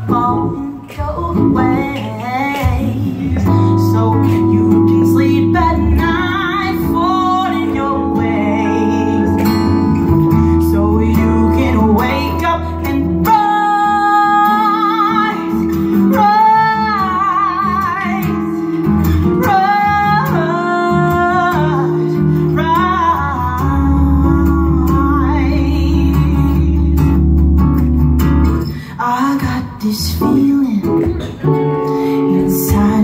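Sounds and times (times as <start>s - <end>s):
woman singing with vibrato: 0.0s - 27.1s, 28.9s - 33.0s
guitar: 0.0s - 33.0s.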